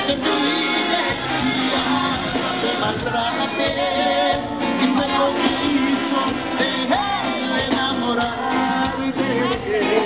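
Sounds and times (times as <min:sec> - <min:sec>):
banda music: 0:00.0 - 0:10.0
trumpet section: 0:00.0 - 0:10.0.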